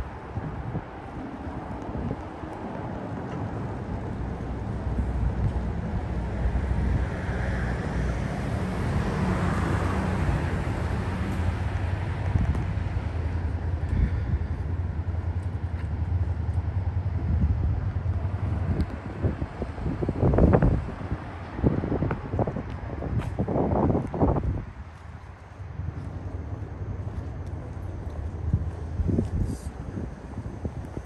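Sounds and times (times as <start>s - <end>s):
road traffic rumble: 0.0s - 31.0s
wind buffeting microphone: 0.0s - 31.0s
vehicle passing: 3.7s - 22.4s.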